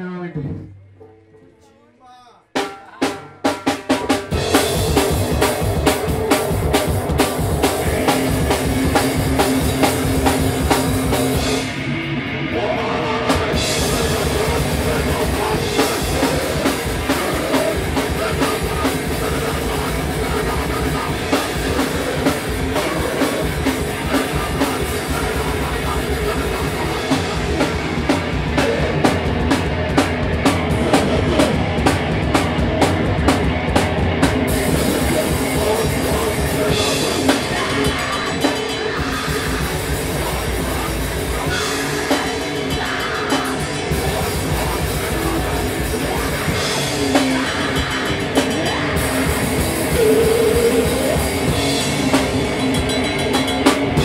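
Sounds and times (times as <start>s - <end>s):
drum kit: 2.5s - 54.0s
live rock band playing: 2.5s - 54.0s.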